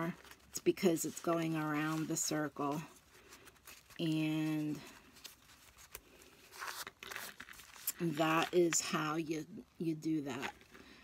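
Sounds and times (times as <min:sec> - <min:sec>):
paper napkin rustling: 0:00.0 - 0:08.8.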